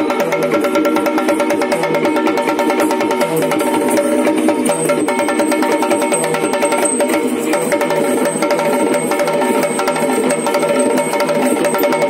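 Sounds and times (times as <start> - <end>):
fast drumming: 0.0 - 12.0.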